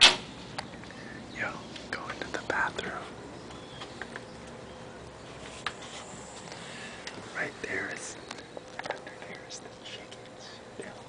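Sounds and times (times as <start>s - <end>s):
person whispering: 1.4s - 3.2s, 7.3s - 8.2s, 8.9s - 11.0s.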